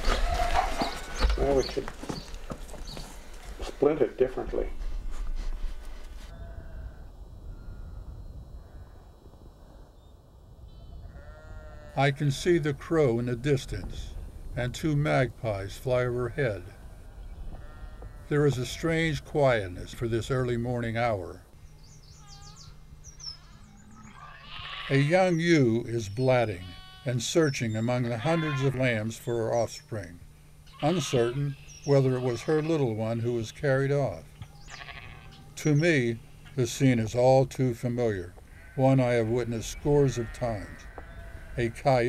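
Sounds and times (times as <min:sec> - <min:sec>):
distant sheep bleating: 0:00.0 - 0:03.0, 0:05.8 - 0:08.0, 0:10.6 - 0:12.6, 0:17.4 - 0:19.2, 0:22.1 - 0:25.4, 0:26.2 - 0:29.4, 0:30.6 - 0:36.9, 0:38.0 - 0:42.0
small birds chirping: 0:00.0 - 0:04.4, 0:21.4 - 0:42.0
low steady rumble: 0:03.1 - 0:42.0.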